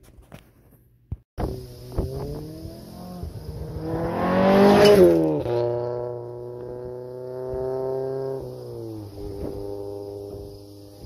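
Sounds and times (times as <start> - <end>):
car speeding past: 1.4 - 11.0.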